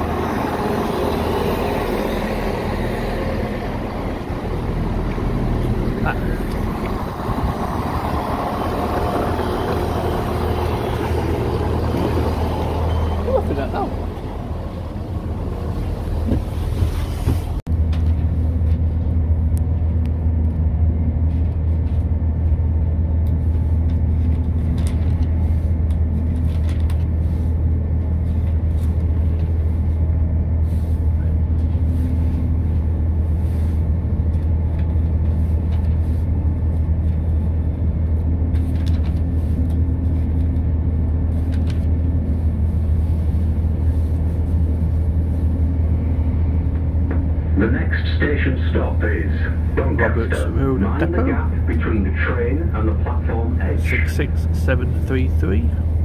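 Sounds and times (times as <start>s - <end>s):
diesel train engine droning: 0.0s - 56.0s
train running noise: 0.0s - 56.0s.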